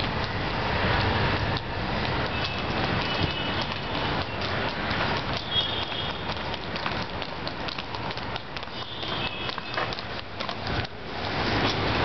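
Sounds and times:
footsteps on stone paving: 0:00.0 - 0:12.0
steady rushing noise: 0:00.0 - 0:12.0.

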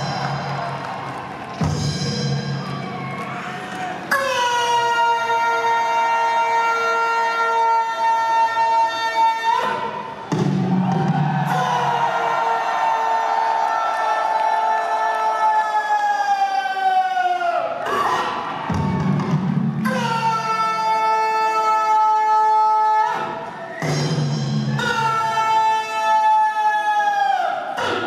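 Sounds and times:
crowd cheering: 0:00.0 - 0:28.0.

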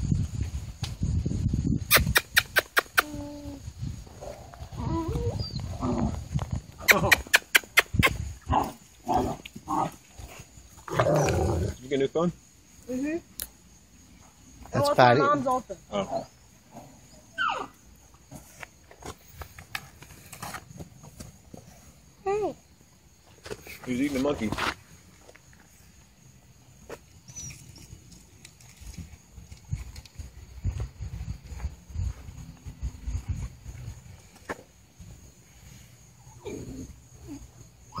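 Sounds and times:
wind and handling on microphone: 0:00.0 - 0:07.2, 0:07.8 - 0:08.6, 0:27.5 - 0:35.2
puppies scuffling on dirt: 0:18.1 - 0:21.9, 0:23.2 - 0:25.9, 0:26.8 - 0:34.6.

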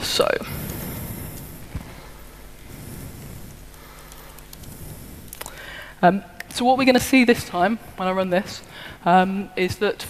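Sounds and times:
laptop keyboard typing: 0:03.6 - 0:05.6.

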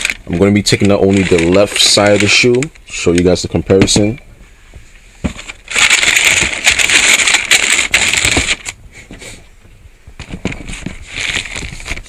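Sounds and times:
tissue paper crinkling: 0:00.0 - 0:03.3, 0:05.3 - 0:08.8, 0:10.2 - 0:12.0.

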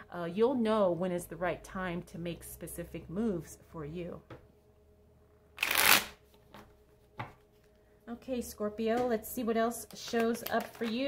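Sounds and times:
cards riffle shuffling: 0:05.6 - 0:06.2.

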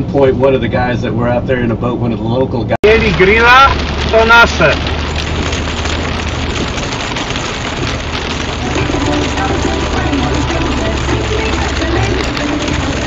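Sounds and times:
heavy rain on truck cab: 0:00.0 - 0:13.0
tyres hissing on wet road: 0:02.8 - 0:13.0.

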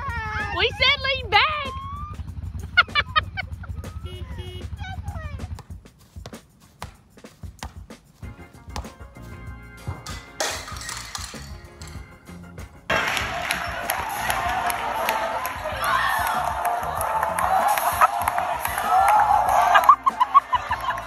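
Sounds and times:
background music: 0:00.0 - 0:21.0
voices calling out: 0:12.9 - 0:21.0.

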